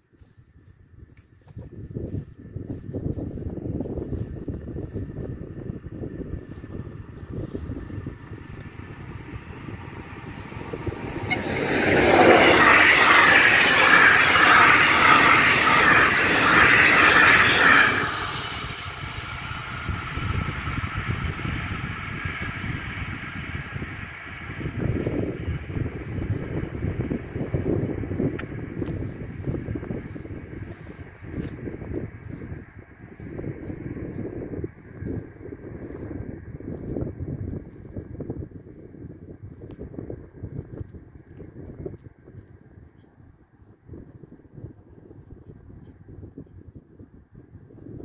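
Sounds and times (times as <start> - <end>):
wind on microphone: 0.0 - 48.0
train wheels rushing on rails: 3.1 - 37.0.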